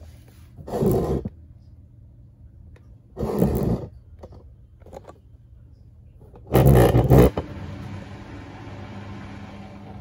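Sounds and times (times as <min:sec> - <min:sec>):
washing machine hum with hiss: 0:06.9 - 0:10.0.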